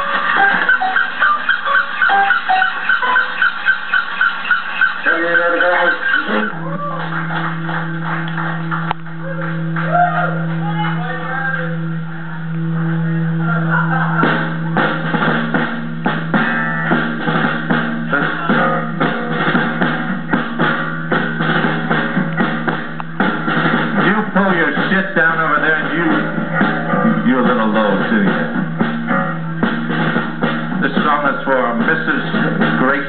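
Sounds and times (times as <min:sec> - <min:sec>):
drum kit beat: 0:00.0 - 0:33.0
live rock band playing: 0:00.0 - 0:33.0.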